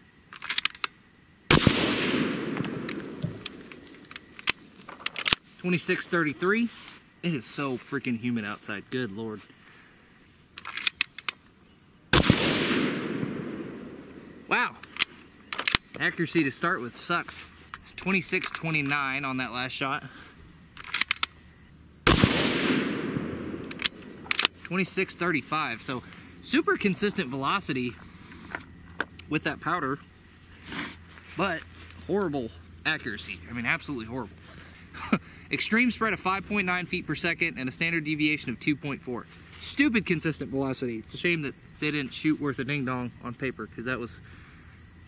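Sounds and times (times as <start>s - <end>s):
sharp clicks: 0.3s - 5.4s, 10.6s - 11.5s, 20.8s - 21.4s, 22.1s - 24.8s
rifle shot: 1.5s - 4.2s, 12.1s - 14.6s, 22.0s - 24.5s.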